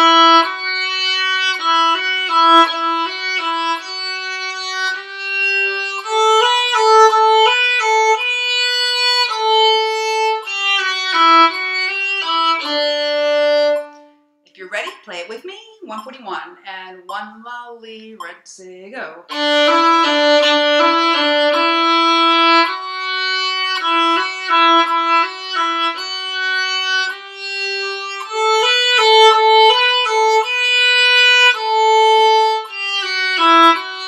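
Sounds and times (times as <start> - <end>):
solo violin playing: 0.0 - 14.4, 19.3 - 34.0
woman talking: 14.5 - 19.3.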